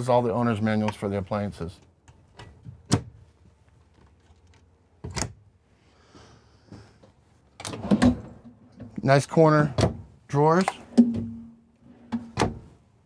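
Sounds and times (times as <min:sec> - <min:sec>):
cabinet door closing with click: 0:12.2 - 0:12.6.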